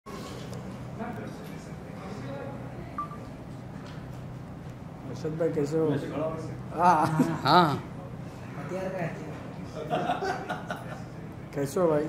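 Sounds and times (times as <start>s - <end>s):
murmur of people talking: 0.1s - 12.0s.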